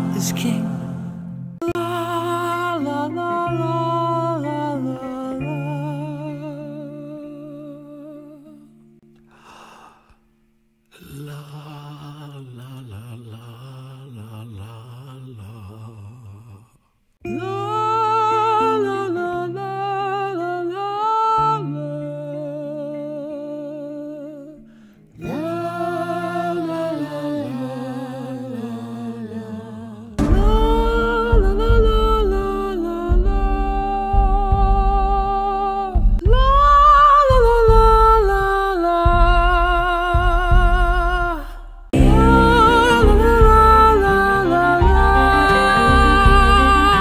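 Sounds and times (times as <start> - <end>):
voices singing wordless melody: 0.0 - 8.7, 10.9 - 47.0
held low note: 30.2 - 38.5, 39.1 - 47.0
low pulsing accompaniment: 30.2 - 47.0.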